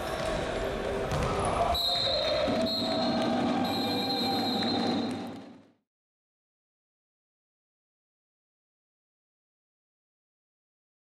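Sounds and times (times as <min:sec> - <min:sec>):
players' voices: 0:00.0 - 0:05.5
ball kicked and bouncing: 0:01.0 - 0:01.4.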